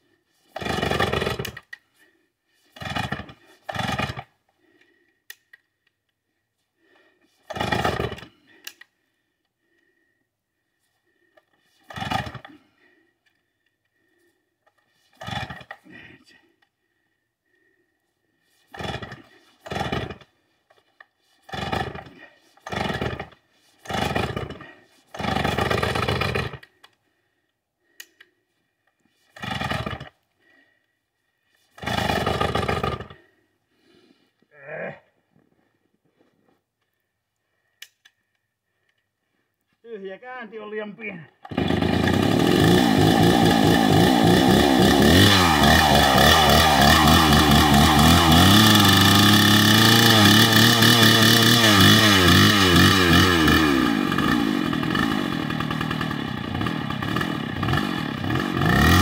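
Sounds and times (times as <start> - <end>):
chainsaw rope pulls: 0.0 - 4.8, 7.3 - 8.9, 11.2 - 12.7, 14.0 - 16.0, 18.4 - 27.0, 28.9 - 30.3, 31.5 - 33.4, 41.3 - 59.0
chainsaw engine cranking: 0.5 - 1.8, 2.7 - 4.4, 7.4 - 8.9, 11.4 - 12.6, 14.7 - 15.9, 18.6 - 27.0, 29.2 - 30.2, 31.7 - 33.3, 41.3 - 59.0.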